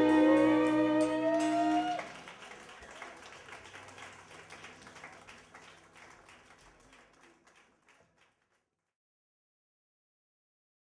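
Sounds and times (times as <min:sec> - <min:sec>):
audience applause: 0:00.0 - 0:08.6.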